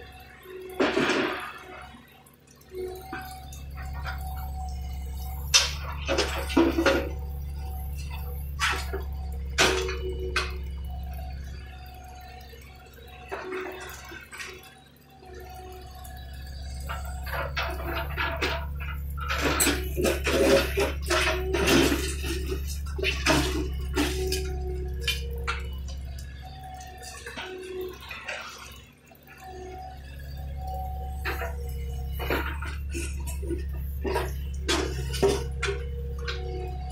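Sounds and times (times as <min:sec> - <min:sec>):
excavator diesel engine running: 0:00.0 - 0:36.9
hydraulic whines: 0:00.0 - 0:36.9.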